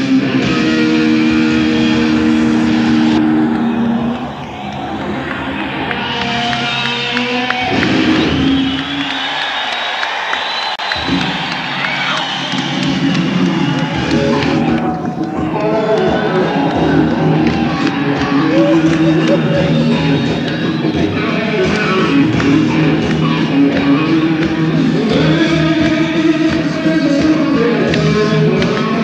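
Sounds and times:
live rock band playing: 0.0s - 4.2s, 5.4s - 8.8s, 10.9s - 29.0s
electric guitar sustained notes: 0.0s - 9.3s, 10.9s - 29.0s.

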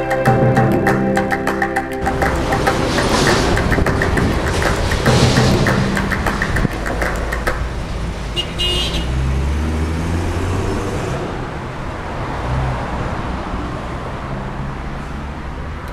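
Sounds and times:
minibus engine rumbling: 0.0s - 15.9s
traffic noise: 0.0s - 15.9s.

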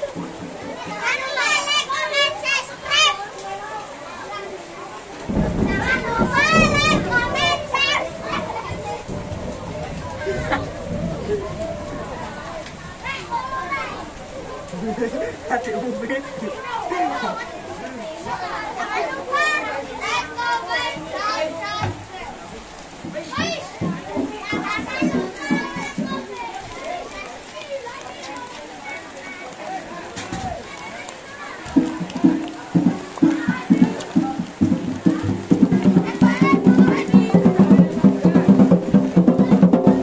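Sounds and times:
adult voices: 0.0s - 40.0s
children chattering and shouting: 0.0s - 40.0s
loud high-pitched shouts: 5.8s - 9.3s, 35.2s - 37.7s.

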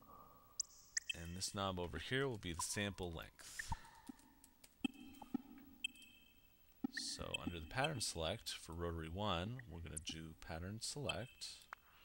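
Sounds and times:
faint low hum: 6.8s - 11.7s.

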